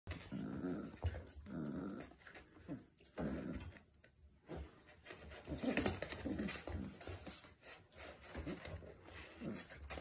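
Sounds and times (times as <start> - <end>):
dog growling in play: 0.1 - 4.0, 5.4 - 7.2, 9.2 - 10.0.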